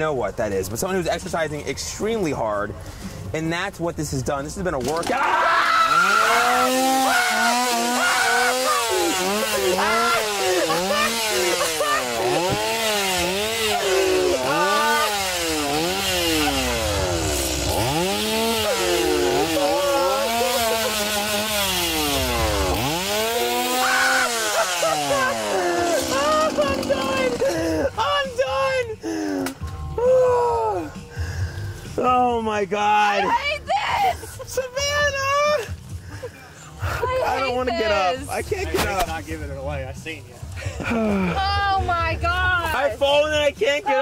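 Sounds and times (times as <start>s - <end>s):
chainsaw engine revving: 5.2s - 28.0s
person's high-pitched cry: 30.0s - 31.0s.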